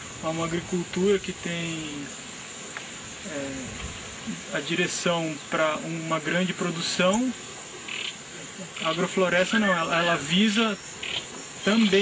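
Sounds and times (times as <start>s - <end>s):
insects chirring: 0.0s - 12.0s.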